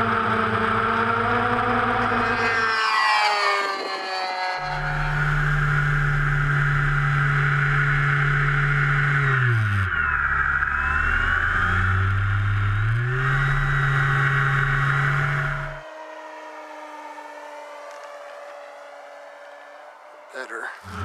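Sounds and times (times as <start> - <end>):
model airplane propeller buzzing: 0.0 - 15.8, 20.7 - 21.0
distant model airplane drone: 0.0 - 21.0.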